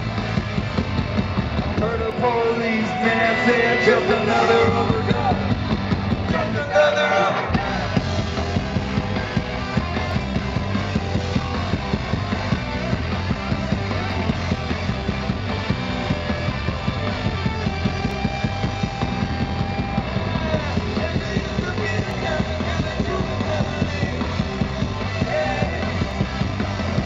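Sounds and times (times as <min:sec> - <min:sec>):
rock band playing instrumental: 0:00.0 - 0:27.0.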